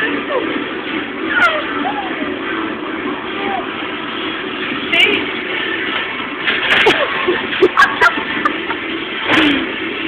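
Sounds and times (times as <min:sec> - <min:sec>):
metal trolley rolling and rattling: 0:00.0 - 0:10.0
metal clatter: 0:03.9 - 0:10.0.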